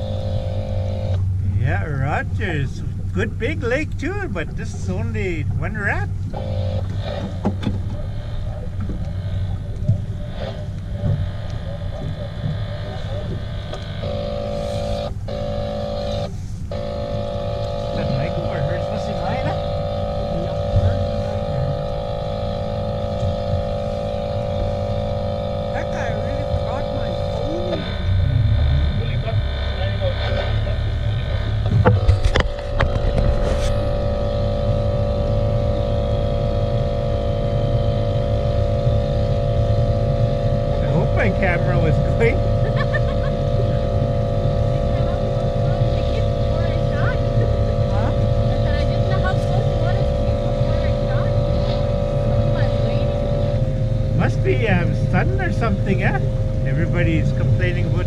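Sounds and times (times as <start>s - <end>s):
outboard motor running: 0.0s - 58.0s.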